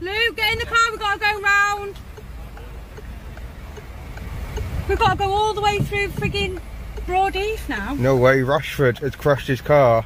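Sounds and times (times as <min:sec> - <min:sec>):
car road and engine rumble: 0:00.0 - 0:10.0
faint light ticks: 0:00.6 - 0:07.8.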